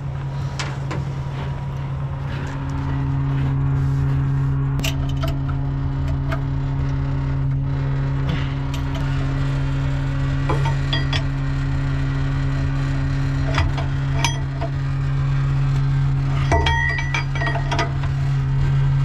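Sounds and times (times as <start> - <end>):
diesel engine running: 0.0 - 19.0
wrench clinking on metal: 16.4 - 18.0.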